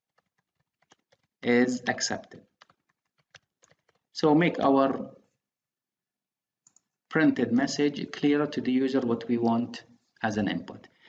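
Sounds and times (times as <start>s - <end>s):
computer mouse clicks: 0.1s - 1.4s, 2.6s - 4.1s, 6.6s - 6.9s
person speaking: 0.7s - 5.4s.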